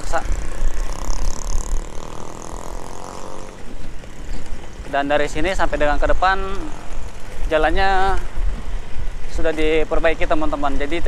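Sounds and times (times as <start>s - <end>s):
humming engine note: 0.0s - 9.3s
motorcycle engine running: 0.0s - 10.8s
wind rumbling on microphone: 0.0s - 11.0s.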